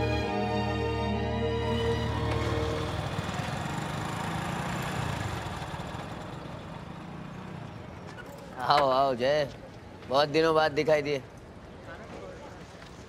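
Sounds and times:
street low rumble: 0.0 - 13.0.

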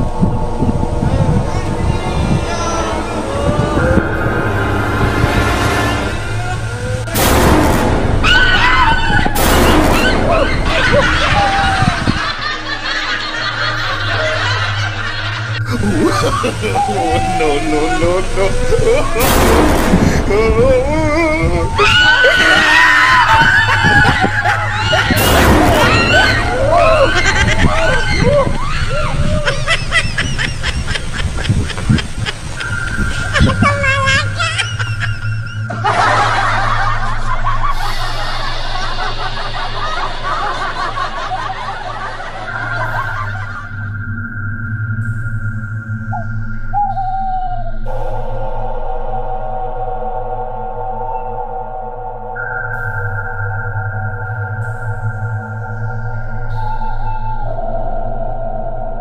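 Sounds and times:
excited voices: 0.0 - 7.2, 8.1 - 43.9, 46.1 - 52.5, 54.0 - 58.8
steady low hum: 0.0 - 59.0
people snickering and laughing: 8.3 - 43.8.

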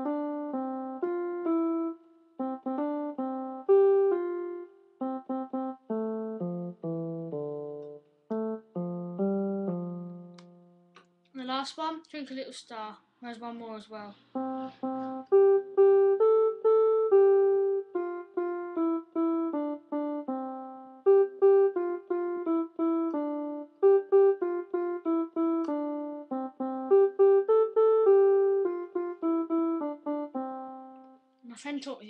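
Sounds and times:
electronic keyboard melody: 0.0 - 11.2, 14.3 - 31.4.

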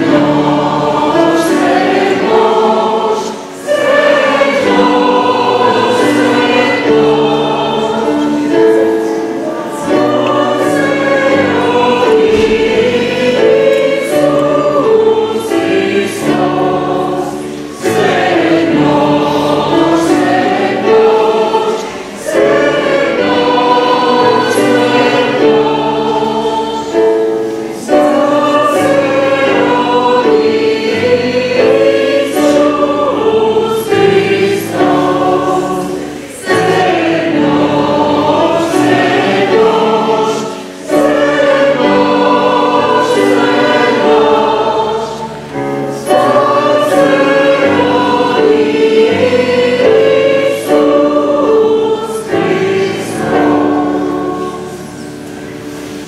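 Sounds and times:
choir singing a hymn: 0.0 - 56.0
keyboard accompaniment: 0.0 - 56.0.

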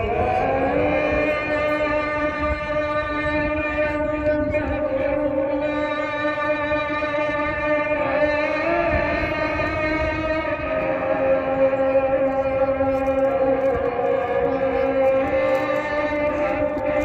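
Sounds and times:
person chanting long notes: 0.0 - 17.0.

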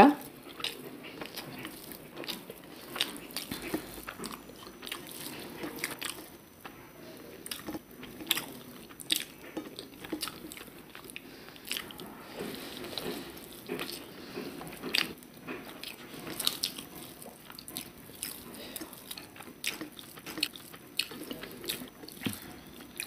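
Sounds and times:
chewing and wet mouth sounds: 0.1 - 23.0.

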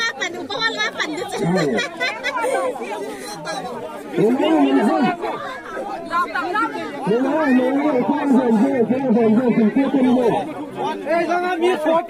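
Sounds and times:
group of people talking: 0.0 - 12.0.

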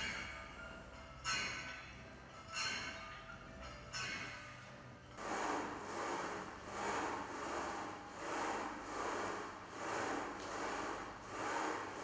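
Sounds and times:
rhythmic rubbing whooshing strokes: 5.2 - 12.0.

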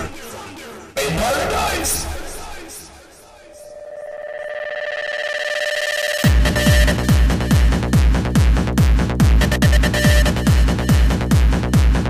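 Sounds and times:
fluttering synthesizer tone: 3.2 - 6.4.

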